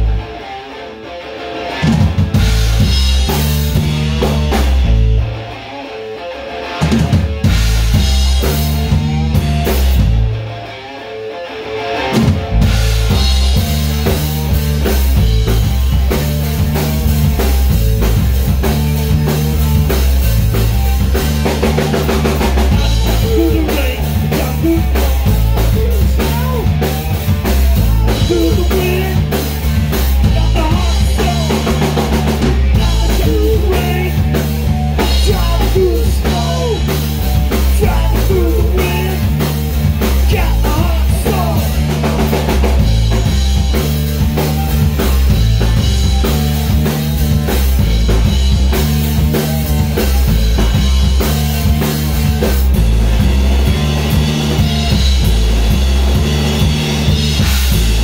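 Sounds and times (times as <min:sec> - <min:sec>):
rock band playing: 0:00.0 - 0:58.0.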